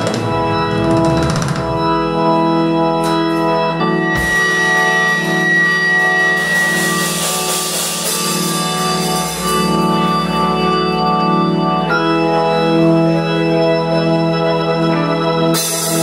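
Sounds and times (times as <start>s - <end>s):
organ chords on keyboard: 0.0s - 16.0s.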